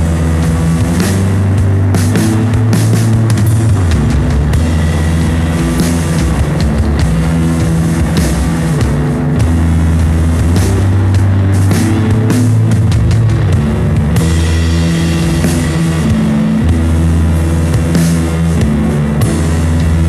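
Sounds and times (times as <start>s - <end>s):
instrumental garage rock: 0.0s - 20.0s.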